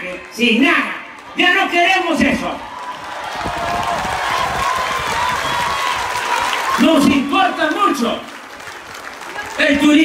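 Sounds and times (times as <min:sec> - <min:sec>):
crowd applauding: 0:00.0 - 0:10.0.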